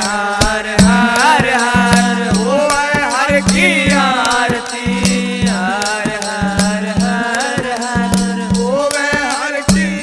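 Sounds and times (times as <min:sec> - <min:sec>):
devotional melody: 0:00.0 - 0:10.0
percussion strokes: 0:00.0 - 0:10.0.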